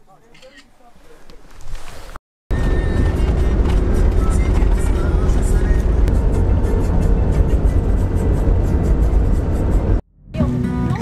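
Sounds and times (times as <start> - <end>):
engine and tyre rumble: 2.5 - 10.0
music: 2.6 - 11.0.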